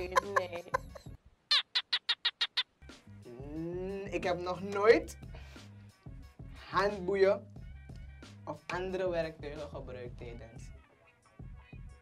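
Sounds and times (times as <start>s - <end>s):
background music: 0.0s - 1.2s, 2.8s - 12.0s.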